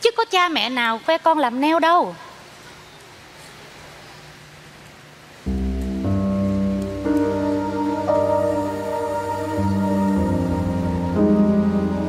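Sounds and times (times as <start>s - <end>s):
faint hiss: 1.8s - 12.0s
soft music with held chords: 5.5s - 12.0s.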